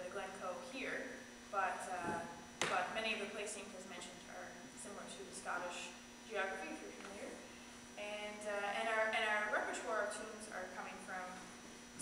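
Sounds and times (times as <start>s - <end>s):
woman speaking: 0.0s - 7.4s, 8.0s - 11.5s.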